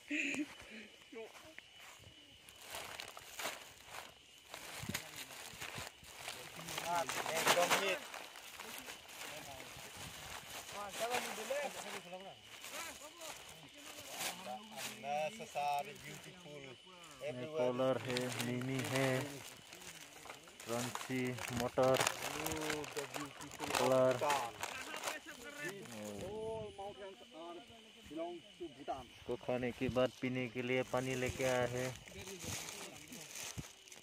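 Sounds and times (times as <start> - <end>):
plastic bag rustling: 2.5 - 15.2, 17.6 - 26.3
people talking: 4.8 - 33.4.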